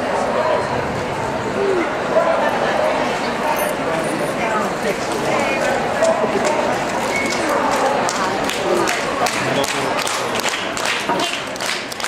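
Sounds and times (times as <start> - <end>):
crowd chattering in a hall: 0.0 - 12.0.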